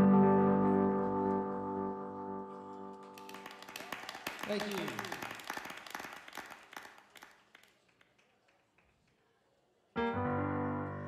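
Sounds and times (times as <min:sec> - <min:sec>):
scattered applause: 0:02.9 - 0:09.5.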